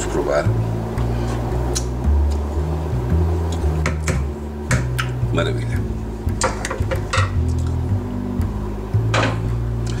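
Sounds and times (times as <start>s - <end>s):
background music with low bass: 0.0s - 10.0s
clanks of steel pot and utensils: 9.1s - 9.5s.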